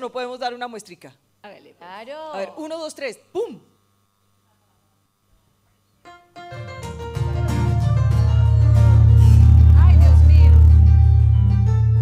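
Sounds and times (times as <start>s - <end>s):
live band playing: 6.4s - 12.0s
loud held low bass note: 7.7s - 12.0s.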